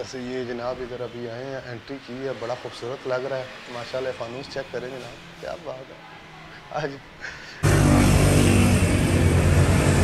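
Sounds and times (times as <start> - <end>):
vehicle engine running: 7.6 - 10.0.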